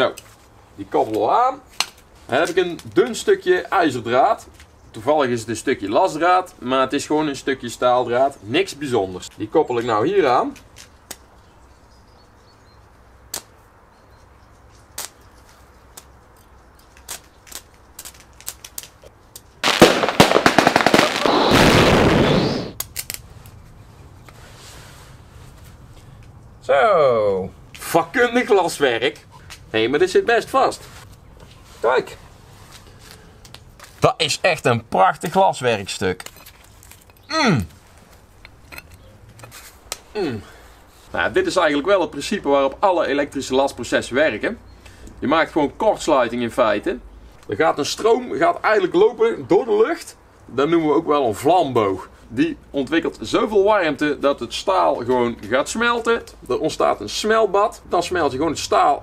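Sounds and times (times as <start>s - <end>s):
electric arc crackling: 19.6s - 23.2s.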